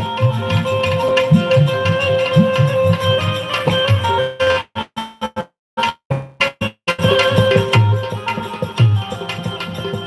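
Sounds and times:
held instrumental tones: 0:00.0 - 0:10.0
plucked strings: 0:00.0 - 0:10.0.

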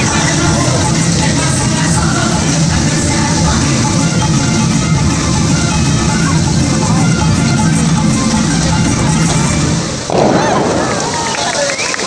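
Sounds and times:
music over loudspeakers: 0:00.0 - 0:10.8
fountain water jets rushing: 0:00.0 - 0:12.0.

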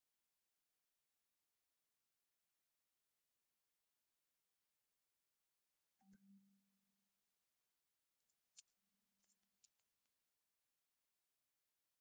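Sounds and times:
high-pitched electronic whine: 0:08.2 - 0:10.3.

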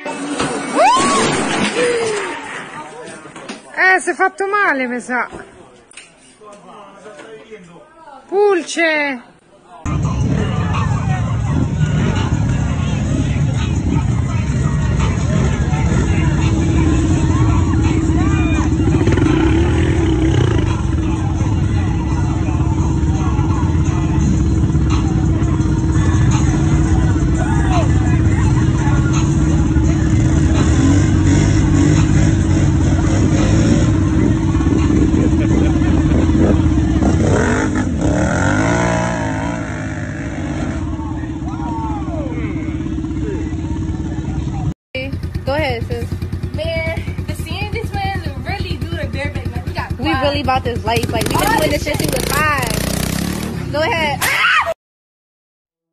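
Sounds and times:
people shouting: 0:00.7 - 0:02.4, 0:41.3 - 0:43.5, 0:54.0 - 0:54.8
engine running at high throttle: 0:15.0 - 0:44.6.

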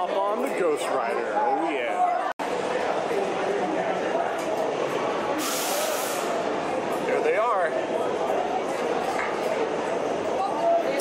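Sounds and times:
crowd chatter: 0:00.0 - 0:11.0
pneumatic air hiss: 0:05.4 - 0:06.4.

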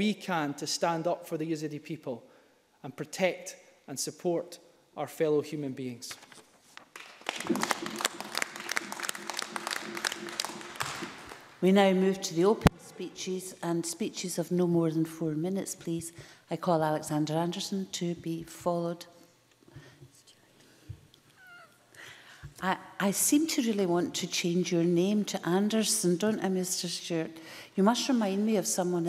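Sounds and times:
people clapping: 0:06.8 - 0:11.6.

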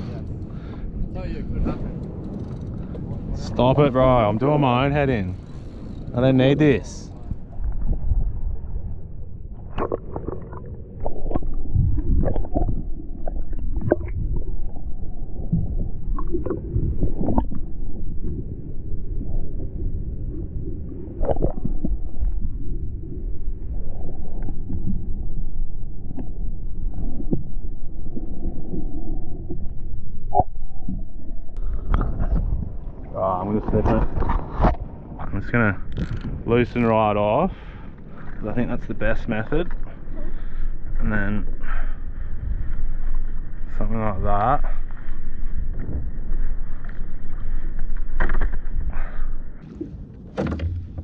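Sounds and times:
muffled underwater rumble: 0:00.0 - 0:51.0.

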